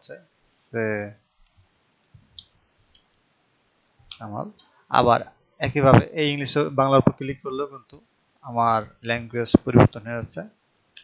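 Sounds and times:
person speaking: 0.0s - 1.2s, 4.1s - 10.5s
faint computer mouse clicks: 2.4s - 3.1s.

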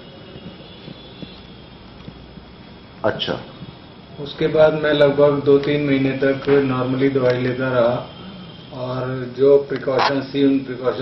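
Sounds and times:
low room hum and hiss: 0.0s - 11.0s.

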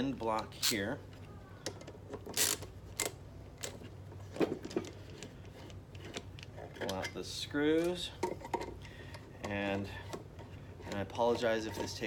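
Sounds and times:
screwdriver metal clicks and scrapes: 0.4s - 0.9s, 1.7s - 3.9s.

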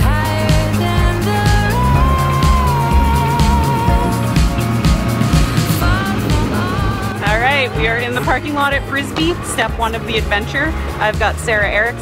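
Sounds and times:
background music: 0.0s - 12.0s
woman talking: 7.2s - 12.0s.

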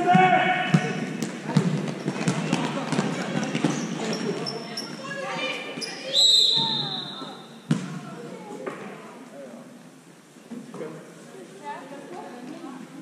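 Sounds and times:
basketball dribbling: 0.7s - 4.6s
sneaker squeaks: 1.6s - 7.9s
referee whistle blast: 6.1s - 7.4s.

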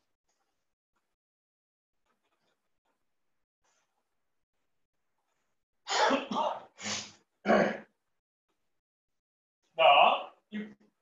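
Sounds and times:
man coughing: 5.9s - 6.7s, 7.4s - 7.9s.

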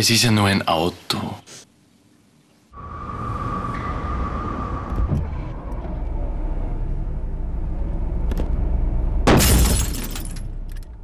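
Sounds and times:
steady high whine: 2.7s - 9.2s
car engine and road rumble: 2.8s - 11.0s.

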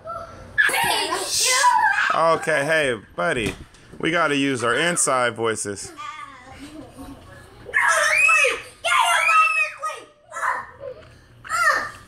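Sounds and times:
child screaming: 0.6s - 2.2s, 7.7s - 10.8s, 11.5s - 12.0s.

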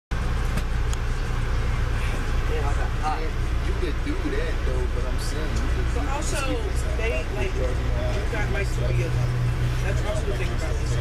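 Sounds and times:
train car rumble: 0.1s - 11.0s.

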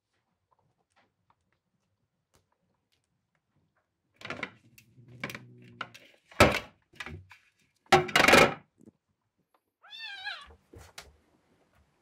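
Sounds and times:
kitten meowing: 9.8s - 10.6s.

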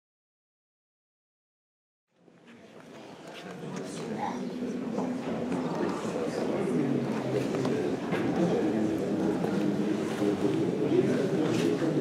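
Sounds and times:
people talking indistinctly: 2.8s - 12.0s.

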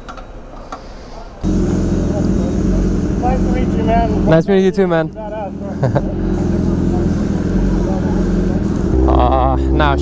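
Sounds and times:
motorcycle engine idling: 1.4s - 10.0s.

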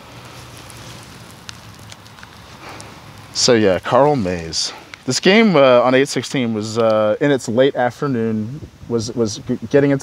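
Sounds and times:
wind hiss on microphone: 0.0s - 10.0s.

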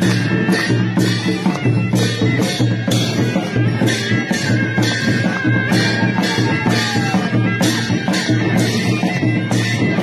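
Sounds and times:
drum beats: 0.0s - 10.0s
high piping wind instrument: 0.0s - 10.0s.

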